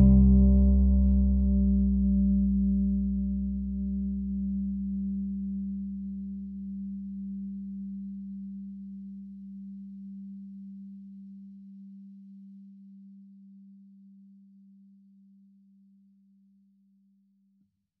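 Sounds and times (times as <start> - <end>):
deep rumble: 0.0 - 6.4
low pure tone: 0.0 - 16.1.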